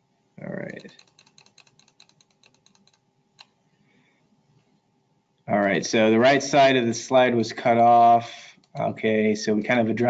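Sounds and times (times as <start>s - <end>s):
keyboard typing: 0.7s - 3.5s.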